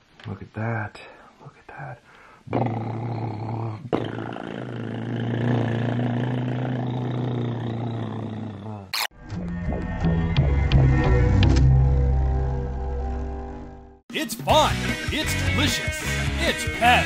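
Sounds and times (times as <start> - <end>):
music: 9.1 - 17.0.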